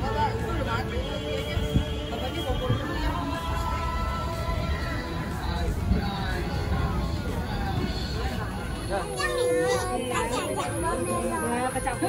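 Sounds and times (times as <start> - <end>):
busy background noise: 0.0 - 12.0
people and children talking: 7.5 - 12.0
child's high-pitched voice: 9.0 - 11.2.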